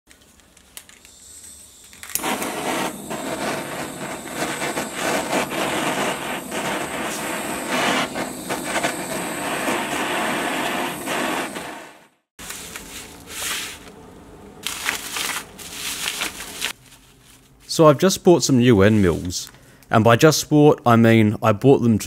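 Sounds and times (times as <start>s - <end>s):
gas torch hissing: 0.9s - 12.3s.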